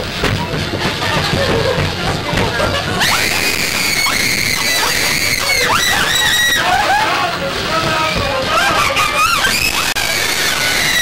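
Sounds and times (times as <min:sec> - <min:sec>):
woman screaming: 0:03.0 - 0:07.1.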